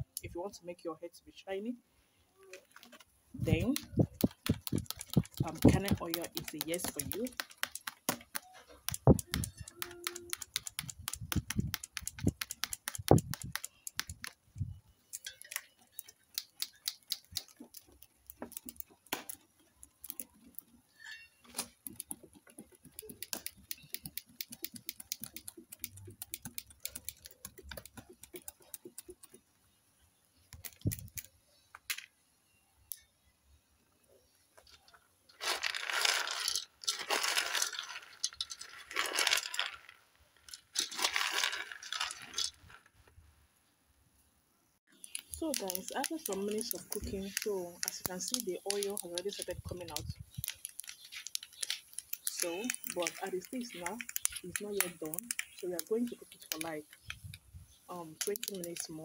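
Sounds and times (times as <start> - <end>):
kernels crackling in pot: 2.7 - 29.5, 34.7 - 43.1, 44.9 - 57.4, 58.0 - 59.0
stick stirring kernels against pot: 3.4 - 29.5, 35.4 - 42.8, 44.9 - 59.0.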